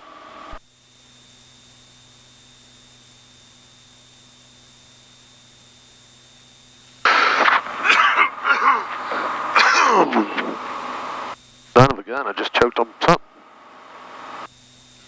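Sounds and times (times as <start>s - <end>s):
steady low hum: 1.4s - 15.0s
man coughing and choking: 7.4s - 10.7s.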